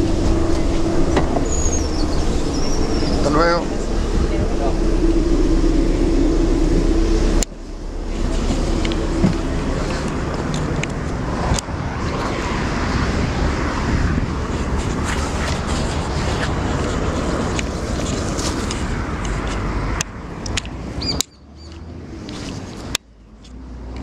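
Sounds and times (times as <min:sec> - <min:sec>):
coach engine hum and rumble: 0:00.0 - 0:24.0.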